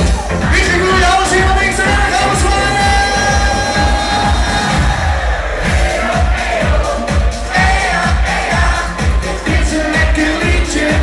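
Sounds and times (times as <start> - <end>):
live pop song over a pa: 0.0 - 11.0.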